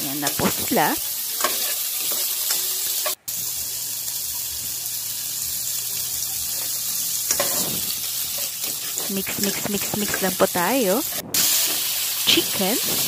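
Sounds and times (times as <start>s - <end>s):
vegetables sizzling in hot oil: 0.0s - 13.0s.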